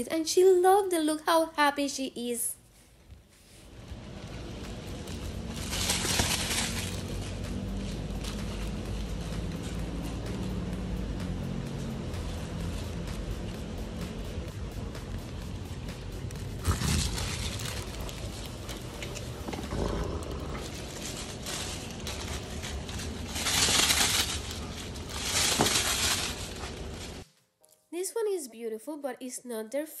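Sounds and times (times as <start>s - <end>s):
plush toy crinkling and rustling: 3.4s - 10.4s, 16.5s - 27.3s
background music: 3.8s - 28.8s.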